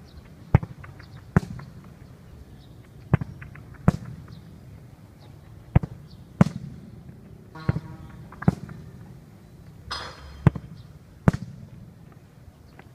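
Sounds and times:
football kick thuds: 10.4s - 11.7s.

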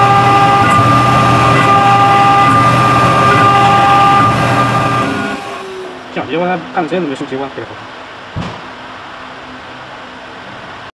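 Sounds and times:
engraving machine humming: 0.0s - 6.5s.

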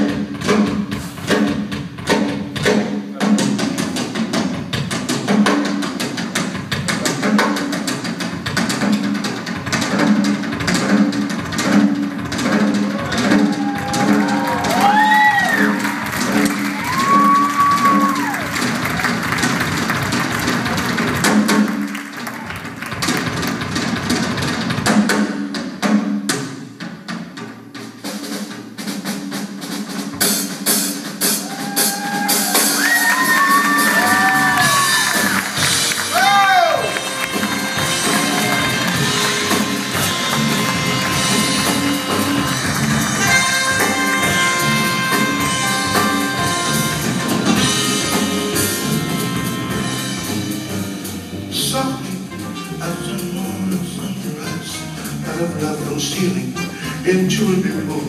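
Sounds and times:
busy drum kit strokes: 0.0s - 58.0s
live band music: 0.0s - 58.0s.

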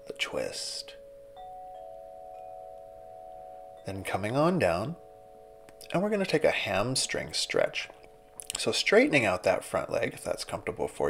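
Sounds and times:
soft ambient music: 0.0s - 11.0s.

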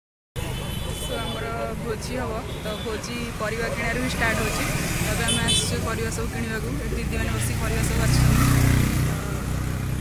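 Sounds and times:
low rumble of street noise: 0.4s - 10.0s
woman speaking: 1.2s - 8.5s.

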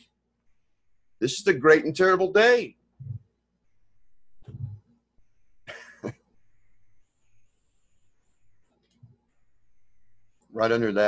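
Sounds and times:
person coughing: 5.7s - 6.2s.

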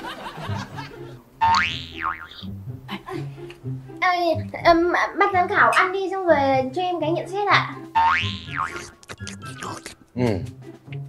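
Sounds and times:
light background music: 0.0s - 11.0s
cartoon boing: 1.4s - 2.4s, 8.0s - 9.8s.

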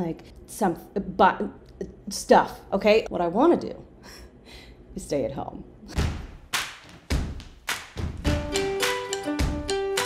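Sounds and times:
intro music melody: 8.1s - 10.0s.

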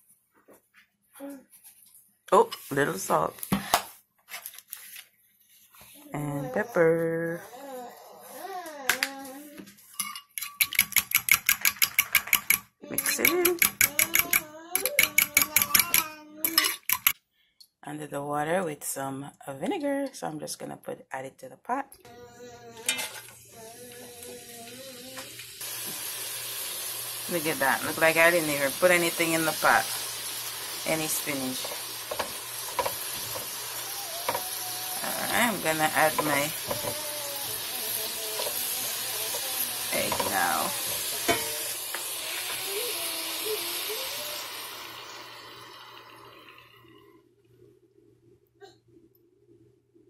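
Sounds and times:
fork clinking against bowl: 10.0s - 17.2s
spatula clicking against pan: 10.6s - 17.2s
spinach sizzling in a frying pan: 22.9s - 46.8s.

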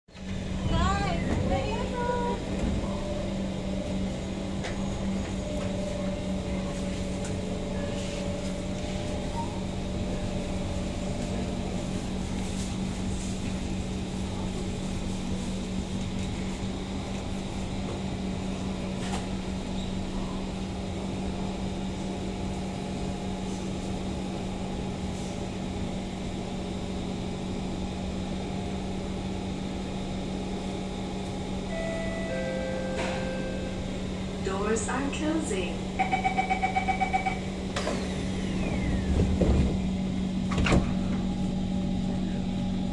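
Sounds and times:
standing train equipment hum: 0.1s - 42.9s.

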